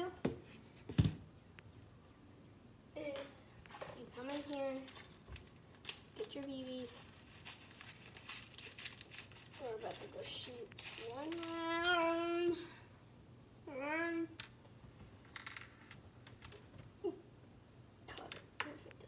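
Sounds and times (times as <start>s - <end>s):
toy gun clicks and rattles: 5.8s - 12.0s.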